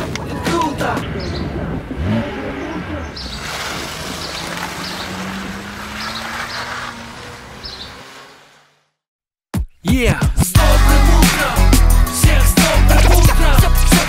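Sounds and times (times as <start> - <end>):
car engine pulling away: 0.8 - 9.0.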